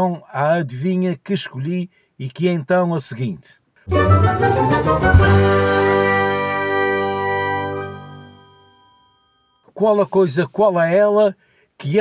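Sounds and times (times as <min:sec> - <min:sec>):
musical jingle: 0:03.9 - 0:09.0
bell-like chord ringing: 0:05.2 - 0:09.6.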